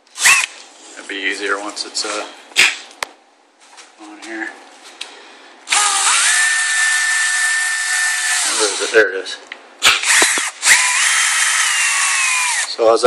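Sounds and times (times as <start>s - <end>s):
cordless drill whining: 0.2s - 0.6s, 5.7s - 9.0s, 9.9s - 12.8s.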